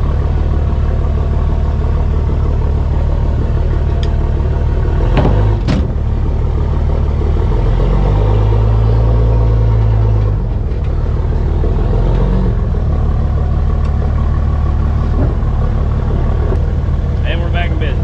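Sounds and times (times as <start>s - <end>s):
pickup truck engine: 0.0s - 18.0s.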